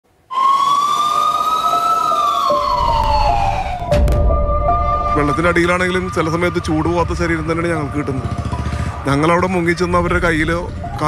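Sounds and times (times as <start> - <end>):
fire engine siren wailing: 0.3 - 11.0
low rumble: 2.6 - 11.0.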